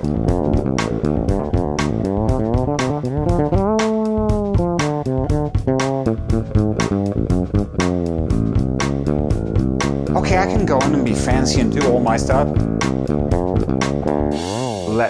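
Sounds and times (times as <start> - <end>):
fretless electric bass sliding notes: 0.0 - 15.0.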